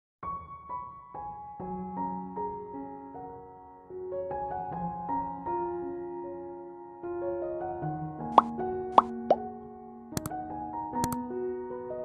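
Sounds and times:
soft piano music: 0.2s - 12.0s.

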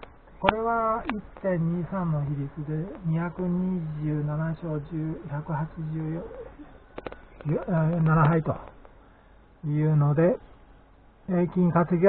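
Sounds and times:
man speaking: 0.4s - 6.7s, 7.4s - 8.7s, 9.6s - 10.4s, 11.3s - 12.0s
sharp clicks: 6.9s - 9.0s.

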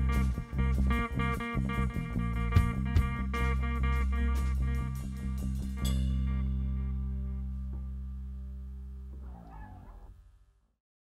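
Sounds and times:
low held chord: 0.0s - 9.2s.

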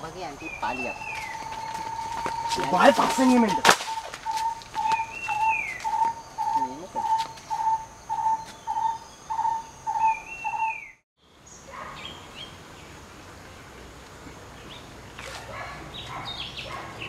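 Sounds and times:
faint bird chirps: 0.2s - 12.5s
longer falling bird call: 0.4s - 11.0s.

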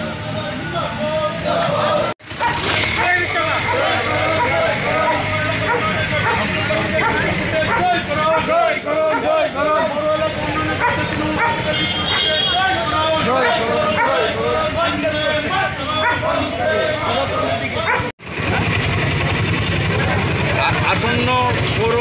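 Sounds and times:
crowd shouting: 0.0s - 18.1s
street noise: 0.0s - 22.0s.

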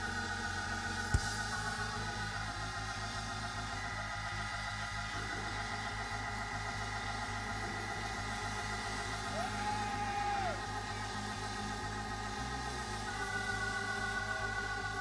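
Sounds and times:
steady low beat: 0.0s - 9.5s, 10.6s - 15.0s
organ chords: 10.6s - 15.0s.

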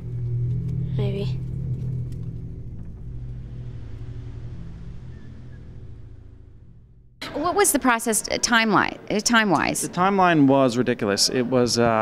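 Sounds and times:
low rumbling drone: 0.0s - 7.5s.

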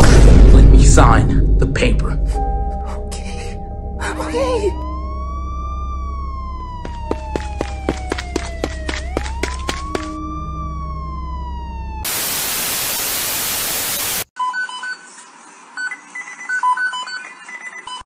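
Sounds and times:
low hum: 0.0s - 13.3s
police siren wailing: 4.7s - 13.2s
static hiss: 12.1s - 14.3s.

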